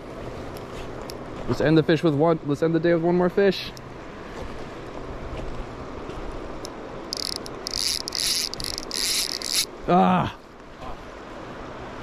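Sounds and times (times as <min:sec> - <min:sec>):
river and wind wash: 0:00.0 - 0:12.0
fishing reel drag buzzing: 0:06.6 - 0:09.7.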